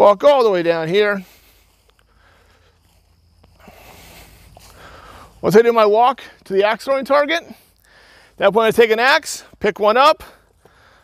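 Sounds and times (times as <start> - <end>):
soft steps on grass: 0.0 - 11.0
man breathing: 1.1 - 5.4, 7.5 - 8.4, 10.2 - 11.0.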